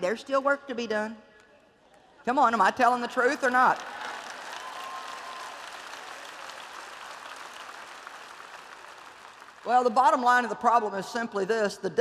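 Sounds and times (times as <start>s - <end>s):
audience applauding: 3.2s - 10.0s.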